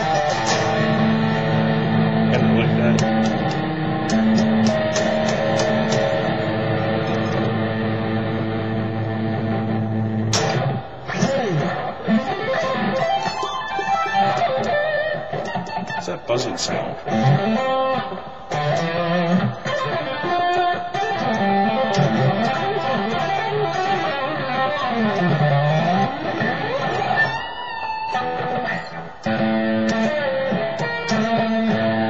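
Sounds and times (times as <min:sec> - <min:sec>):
electric guitar playing: 0:00.0 - 0:32.0.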